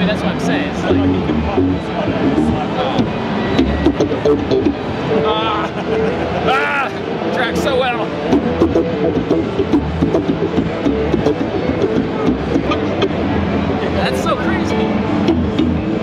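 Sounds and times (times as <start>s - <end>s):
electric bass guitar notes: 0.7s - 5.2s, 8.2s - 13.5s, 15.0s - 16.0s
person speaking: 0.9s - 2.9s.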